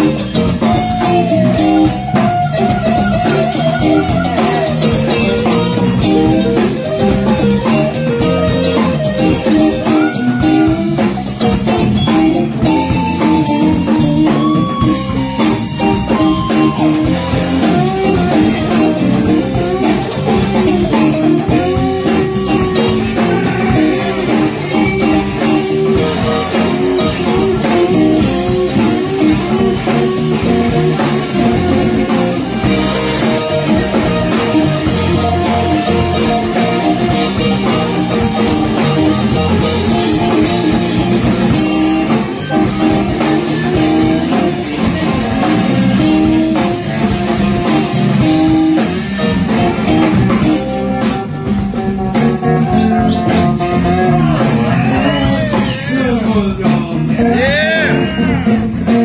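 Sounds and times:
electric guitar bent notes: 0.0s - 59.0s
live electric blues band: 0.0s - 59.0s.

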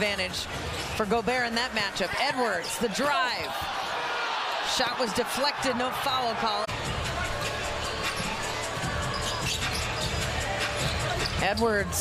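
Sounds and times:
arena crowd noise: 0.0s - 12.0s
arena music: 4.7s - 12.0s.

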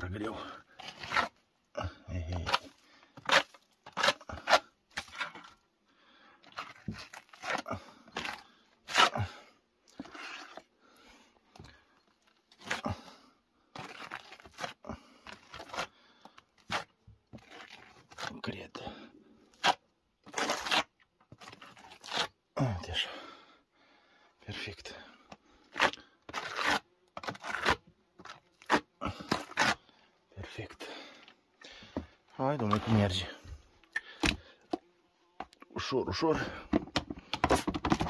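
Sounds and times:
trowel scraping plaster in bucket: 0.1s - 1.4s, 2.3s - 5.6s, 6.4s - 10.7s, 11.5s - 13.1s, 13.7s - 22.4s, 25.6s - 30.7s, 31.8s - 34.8s, 36.4s - 38.0s
trowel smoothing plaster on wall: 0.2s - 1.4s, 2.4s - 5.6s, 6.5s - 9.4s, 10.0s - 10.7s, 13.7s - 22.4s, 25.7s - 29.9s.

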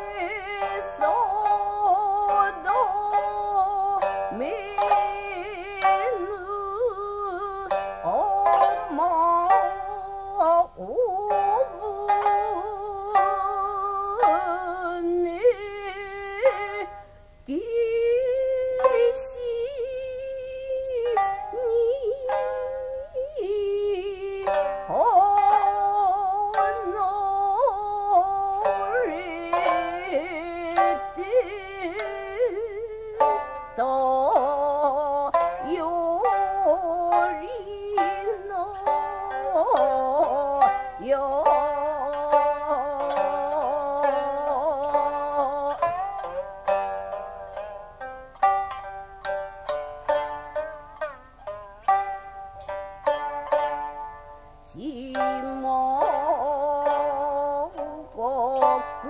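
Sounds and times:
plucked shamisen: 0.0s - 59.0s
woman singing wavering notes: 0.0s - 59.0s.

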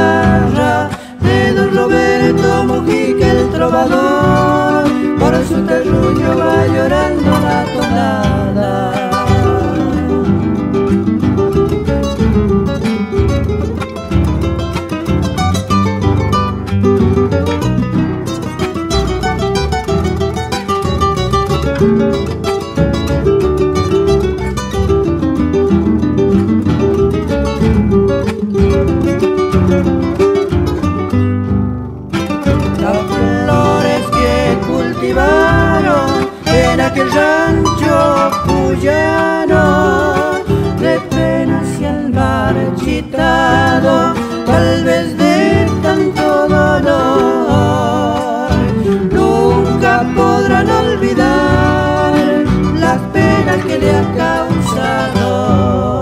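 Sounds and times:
acoustic guitars playing: 0.0s - 56.0s
plucked bass guitar: 0.0s - 56.0s.

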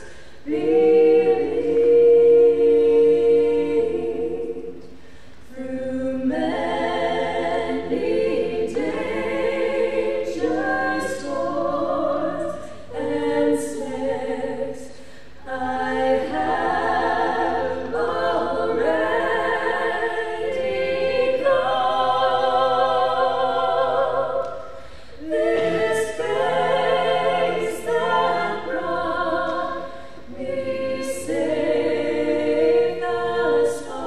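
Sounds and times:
women singing a cappella: 0.0s - 34.0s.

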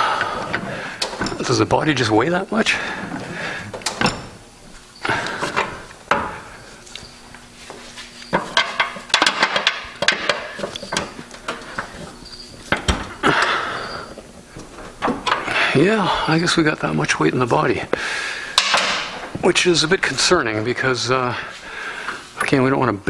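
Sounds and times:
hydraulic floor jack pumping: 0.0s - 1.7s, 2.6s - 16.2s.

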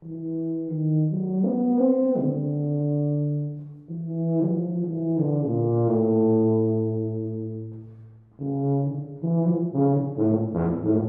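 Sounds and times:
tuba long low note: 0.0s - 11.0s.

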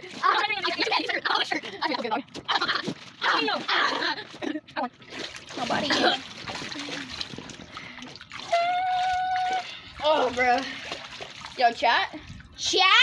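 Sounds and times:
boys laughing and yelling: 0.0s - 4.8s, 8.5s - 10.6s
splashing in water: 2.3s - 12.7s
long held cry: 8.4s - 9.8s.

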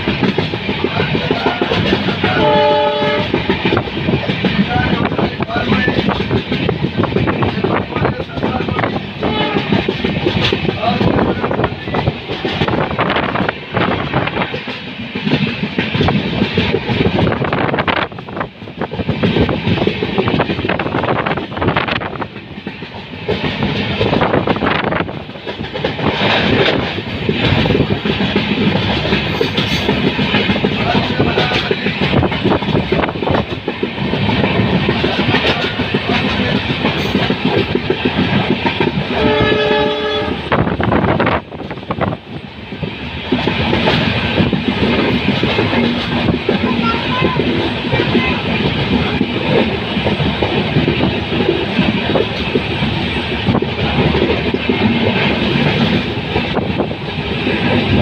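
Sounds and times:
train wheels and wind rushing: 0.0s - 58.0s
locomotive horn: 1.3s - 3.5s, 9.2s - 9.9s, 39.1s - 40.6s, 46.7s - 48.5s.

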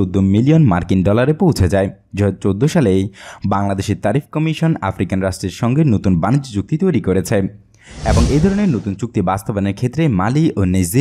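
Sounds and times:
narrator speaking: 7.9s - 9.2s.

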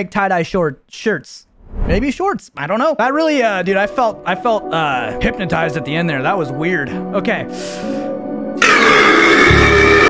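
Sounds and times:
soft background music: 3.4s - 8.6s
loud distorted blast: 8.6s - 10.0s.

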